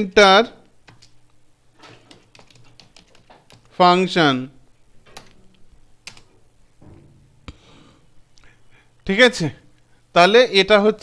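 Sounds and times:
keyboard typing: 0:00.8 - 0:01.2, 0:01.8 - 0:03.8, 0:05.1 - 0:06.4.

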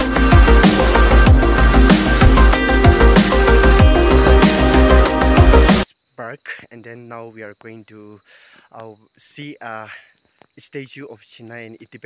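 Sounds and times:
crickets chirring: 0:00.0 - 0:12.0
man talking: 0:06.2 - 0:12.0.

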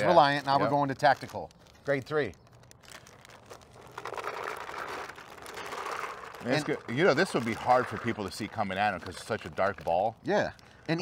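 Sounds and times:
paintballs rattling into hopper: 0:03.3 - 0:10.0.

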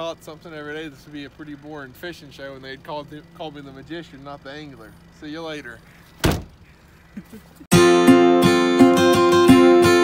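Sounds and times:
thump against a car: 0:06.2 - 0:06.6
acoustic guitar strumming: 0:07.7 - 0:10.0.

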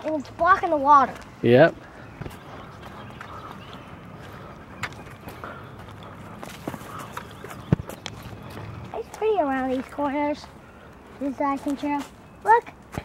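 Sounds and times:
footsteps on a trail: 0:00.0 - 0:13.0.

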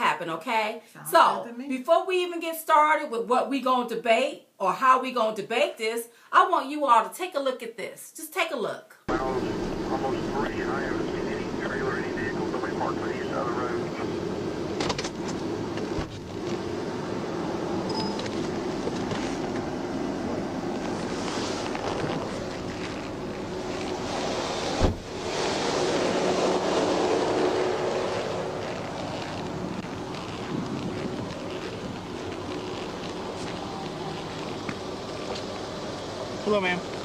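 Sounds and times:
road noise: 0:09.1 - 0:37.0
traffic passing: 0:09.1 - 0:37.0
wind noise: 0:22.9 - 0:33.6.

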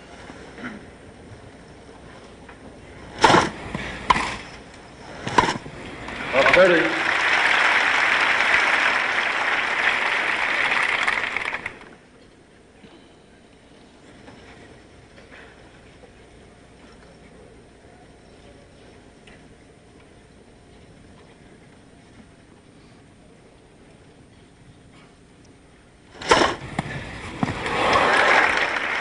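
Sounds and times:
crowd applause: 0:06.0 - 0:12.0, 0:27.3 - 0:29.0
tennis racket hitting ball: 0:26.2 - 0:27.8.

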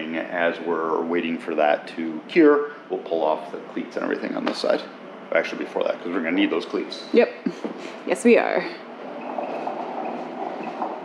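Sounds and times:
faint high whine: 0:00.0 - 0:07.6.

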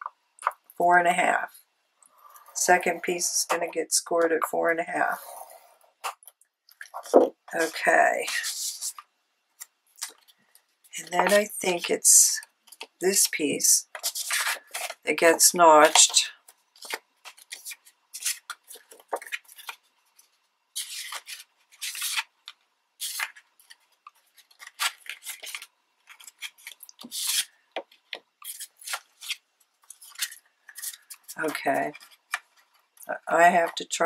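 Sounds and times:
paper rustling and crinkling: 0:13.9 - 0:15.0, 0:15.9 - 0:33.0.

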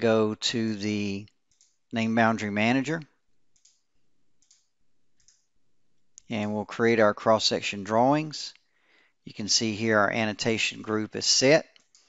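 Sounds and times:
faint computer mouse clicks: 0:03.6 - 0:03.8, 0:04.4 - 0:05.5.

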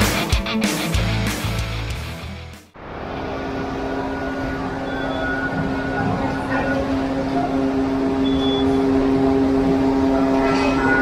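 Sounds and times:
machinery hum with two-note drone: 0:02.8 - 0:11.0.

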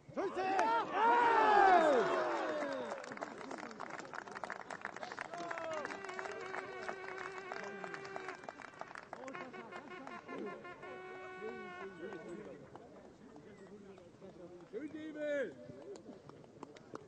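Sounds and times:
people shouting: 0:00.2 - 0:02.6
crowd cheering and clapping: 0:00.2 - 0:10.7.

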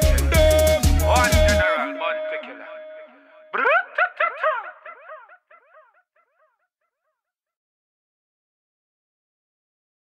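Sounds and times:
high yelp-like cry with echo: 0:02.7 - 0:06.4.

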